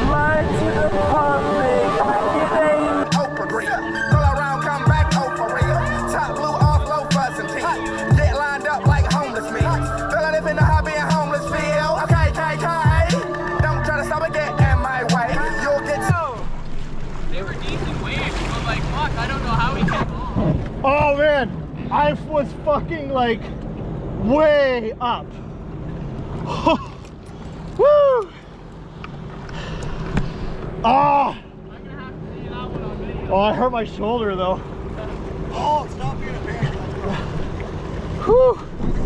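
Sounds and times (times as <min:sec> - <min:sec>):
voices calling out loudly: 0:00.0 - 0:16.5
watercraft engines idling: 0:00.0 - 0:39.0.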